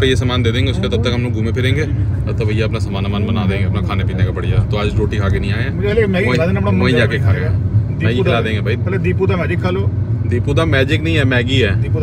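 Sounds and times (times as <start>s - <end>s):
car driving rumble: 0.0s - 12.0s
men talking: 0.0s - 12.0s.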